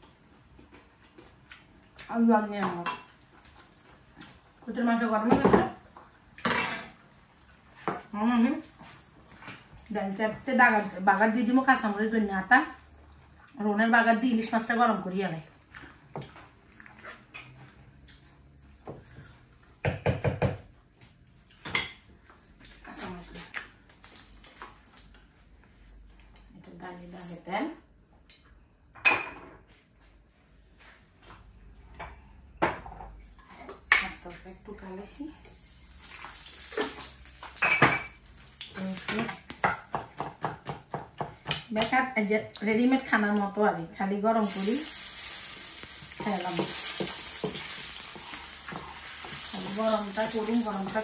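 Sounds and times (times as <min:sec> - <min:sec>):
hot oil sizzling in pan: 0:35.4 - 0:40.1, 0:44.4 - 0:51.0
liquid simmering: 0:44.4 - 0:51.0
wooden masher scraping a pot: 0:46.2 - 0:51.0.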